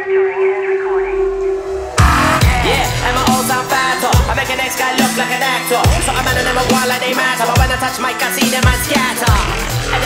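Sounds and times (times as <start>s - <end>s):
steady held tone: 0.0s - 4.8s
low rumble: 0.5s - 4.6s.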